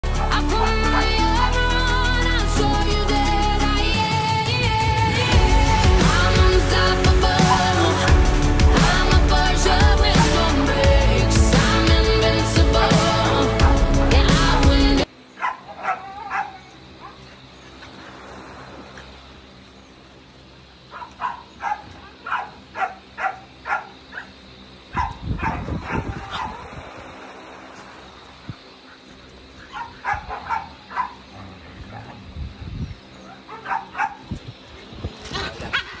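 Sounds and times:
background music: 0.0 - 15.1
dog barking: 15.4 - 17.2, 20.9 - 24.3, 24.9 - 26.6, 29.7 - 31.3, 33.2 - 34.3.

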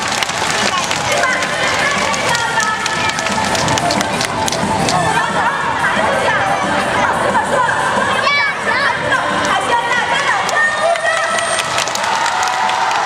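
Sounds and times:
audience chattering: 0.0 - 13.0
music over loudspeakers: 0.0 - 13.0.

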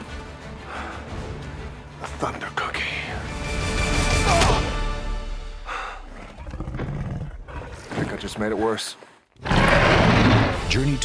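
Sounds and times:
dramatic orchestral music: 0.0 - 6.2, 9.4 - 11.0
giant lizard growl: 6.1 - 7.8, 9.4 - 10.6.

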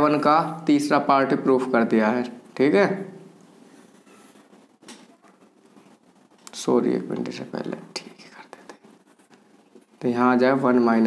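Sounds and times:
marker pen writing on whiteboard: 3.7 - 5.9, 8.0 - 10.0.

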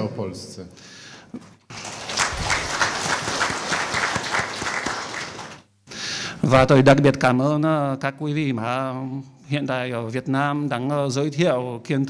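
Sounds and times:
audience applauding: 1.7 - 5.6.

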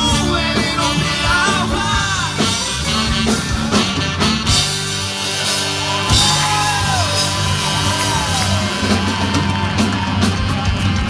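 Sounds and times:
rock band playing: 0.0 - 11.0
wavering lead guitar line: 0.0 - 11.0.

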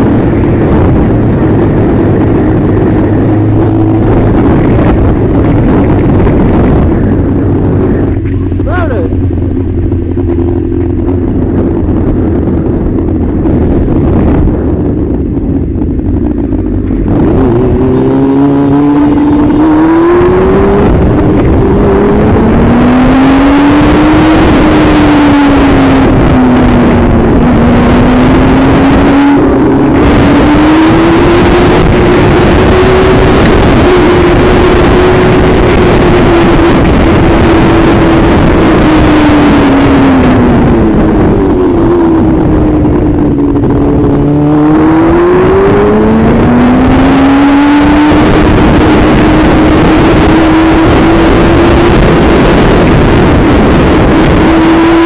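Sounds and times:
motorcycle engine revving: 0.0 - 55.0
wind noise on microphone: 0.0 - 55.0.

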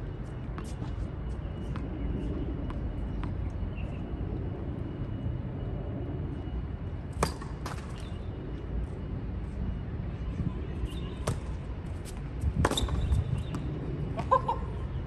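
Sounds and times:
racket striking tennis ball: 7.2 - 7.9.

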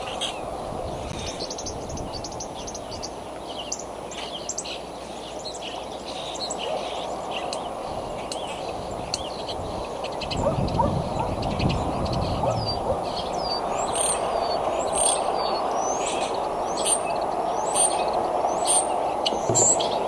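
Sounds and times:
outdoor background noise: 0.0 - 20.0
small birds calling: 0.0 - 20.0.

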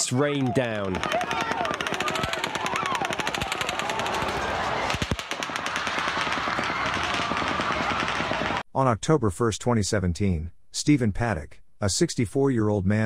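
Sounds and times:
rapid rifle gunfire: 0.9 - 8.6.

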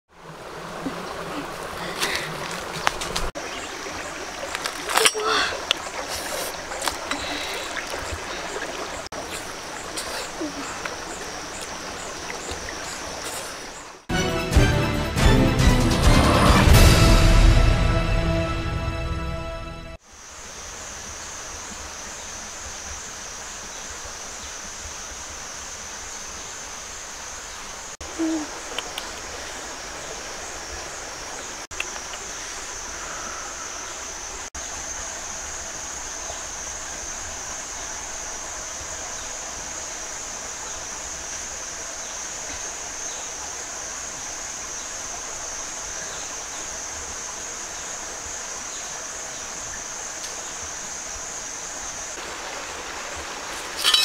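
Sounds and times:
cicadas droning: 0.1 - 14.1, 20.0 - 54.0.

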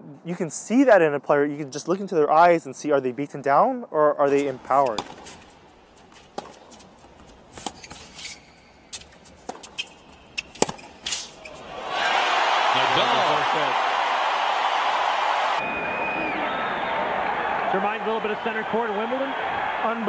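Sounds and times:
racquets hitting tennis ball: 4.4 - 11.7
crowd cheering and applauding: 11.7 - 20.0.

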